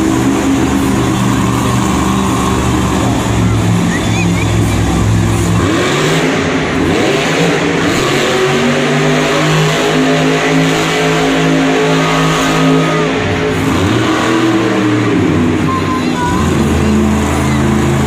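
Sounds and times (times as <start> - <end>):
truck engine revving: 0.0 - 18.0.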